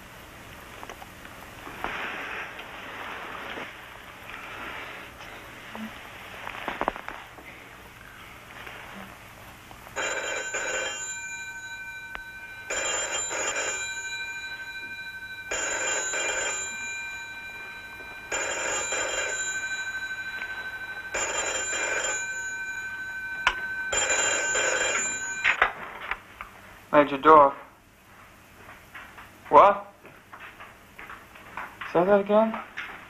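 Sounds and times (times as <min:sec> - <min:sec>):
telephone bell ringing: 0:10.0 - 0:25.6.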